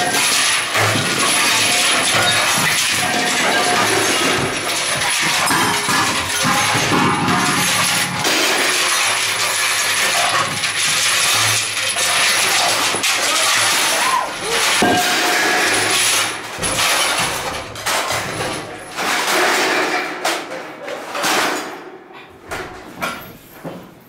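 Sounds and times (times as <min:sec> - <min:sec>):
harsh noise: 0:00.0 - 0:20.2
clattering and clinking metal: 0:00.0 - 0:21.9.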